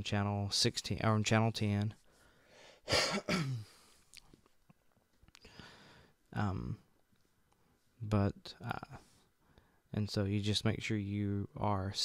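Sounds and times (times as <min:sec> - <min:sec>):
man clearing his throat: 0:02.9 - 0:03.8.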